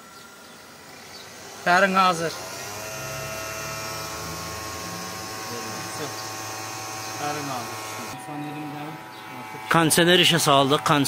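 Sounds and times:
electric cooling fan humming: 0.0 - 11.0.

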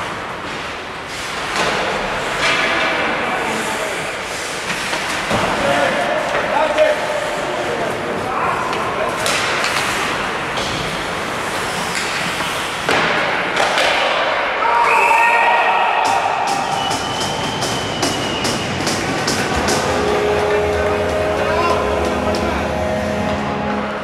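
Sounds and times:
skating and stick noise: 0.0 - 24.0
people shouting: 14.5 - 17.9
referee's whistle: 14.8 - 19.0.

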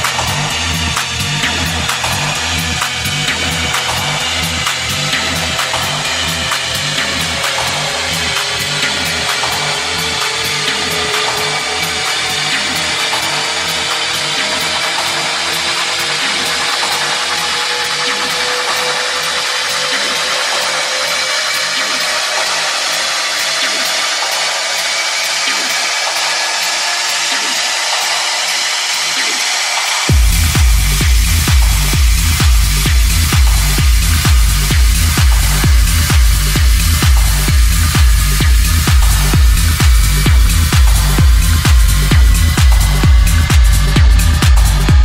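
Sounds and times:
fast ticking hi-hats: 0.0 - 45.0
pulsing bass line: 0.0 - 45.0.

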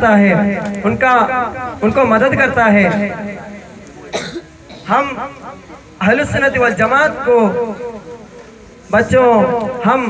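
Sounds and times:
man speaking into a microphone: 0.0 - 10.0
man coughing: 4.1 - 5.0.

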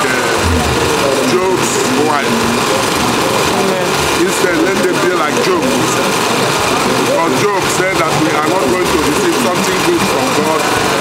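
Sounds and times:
steady background noise: 0.0 - 11.0
man talking: 7.2 - 10.7.

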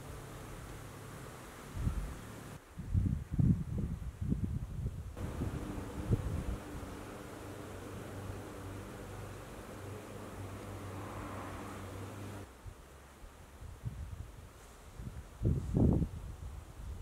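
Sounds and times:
faint hiss: 0.0 - 17.0
wind buffeting microphone: 1.7 - 9.1, 13.6 - 17.0
steady low hum: 5.2 - 12.5.

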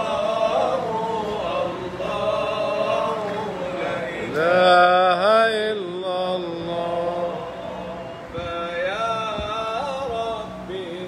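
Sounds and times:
man chanting religious invocation: 0.0 - 11.0.

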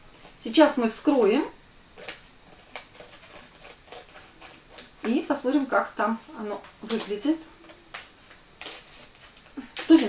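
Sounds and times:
scissors snipping plastic: 6.8 - 10.0.

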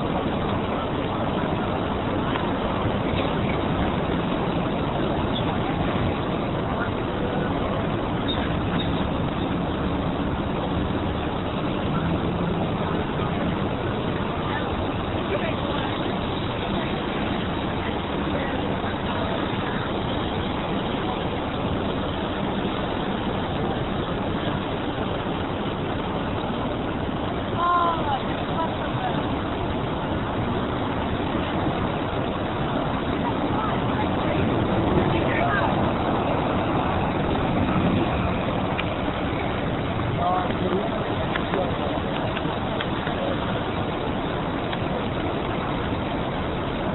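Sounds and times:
indistinct voices of passers-by: 0.0 - 46.9
traffic noise: 0.0 - 46.9.

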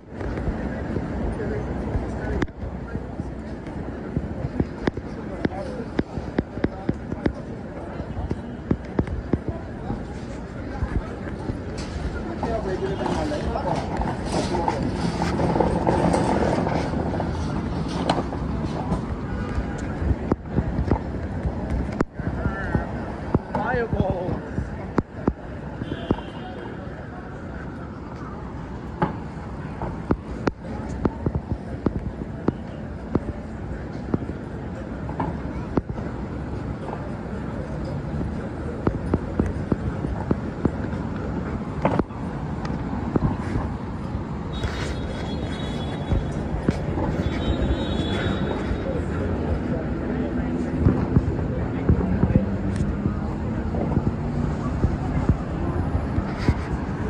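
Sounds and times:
passersby talking: 0.0 - 57.0
traffic noise: 0.0 - 57.0.

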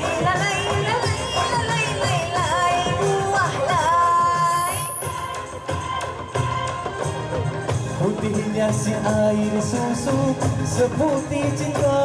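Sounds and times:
backing music: 0.0 - 12.0
person singing pop song: 0.0 - 12.0.

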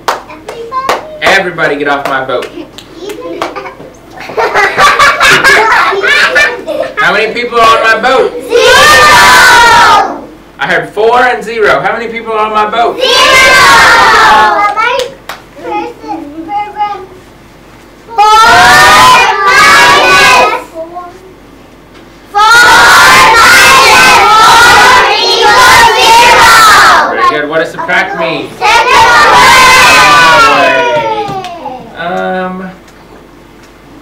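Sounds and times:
children shouting together: 8.4 - 10.3, 13.0 - 14.8, 18.2 - 20.7, 22.4 - 27.2, 28.6 - 31.9.

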